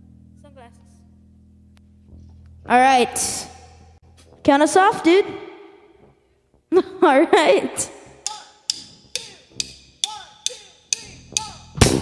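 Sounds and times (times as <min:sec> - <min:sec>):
drumsticks clicking together: 0:08.2 - 0:11.7.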